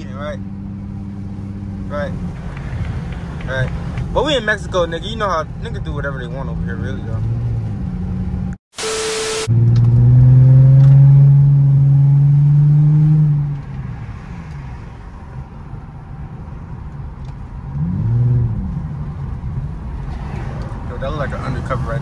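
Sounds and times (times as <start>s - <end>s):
short sharp burst of noise: 8.7s - 9.6s
car engine accelerating hard: 9.3s - 13.7s.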